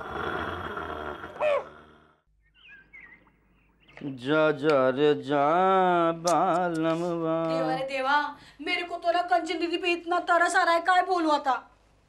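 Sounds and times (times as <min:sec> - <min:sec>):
faint bird chirps: 0:02.3 - 0:04.2.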